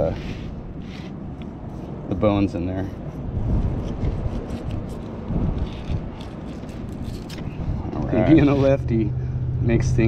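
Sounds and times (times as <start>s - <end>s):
knife scraping fish backbone: 3.8s - 7.6s.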